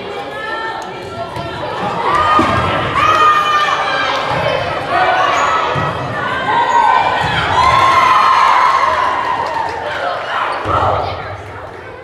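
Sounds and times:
girls shouting and cheering: 1.8 - 11.4.

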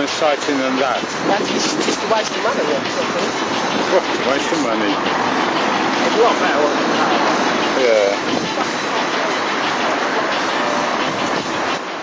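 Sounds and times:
city street rushing noise: 0.0 - 12.0.

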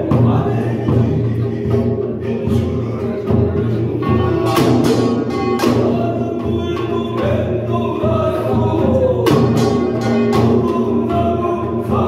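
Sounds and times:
barrel drums beating: 0.0 - 12.0.

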